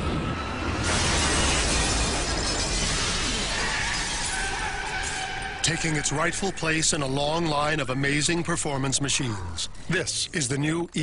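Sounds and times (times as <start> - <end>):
plate glass shattering: 0.8 - 5.2.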